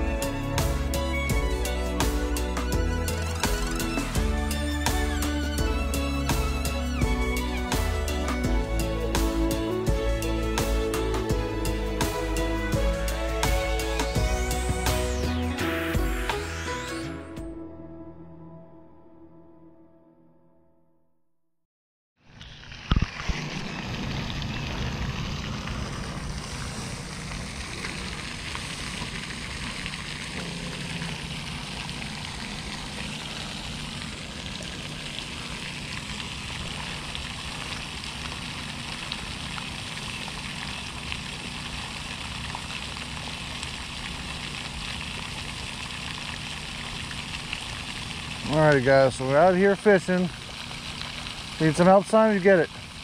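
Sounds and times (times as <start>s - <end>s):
fountain water splashing: 0.0s - 15.4s, 22.3s - 53.0s
low rumble: 23.7s - 36.6s.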